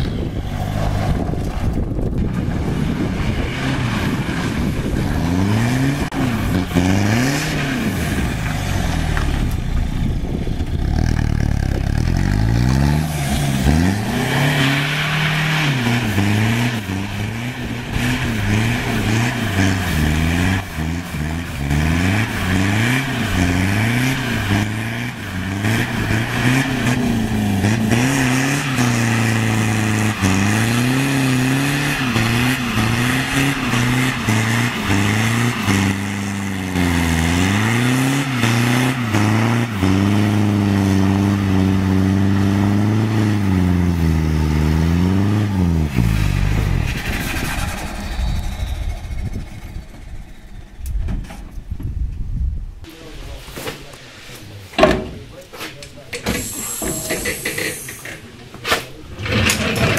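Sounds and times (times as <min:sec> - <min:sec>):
diesel engine revving hard: 0:02.5 - 0:50.8
tyre noise hissing: 0:55.5 - 0:59.0.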